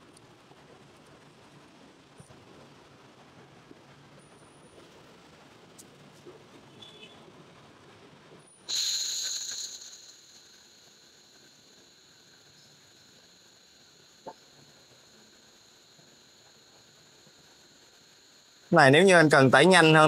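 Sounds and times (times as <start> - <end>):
gas hissing from nozzle: 8.5 - 20.0.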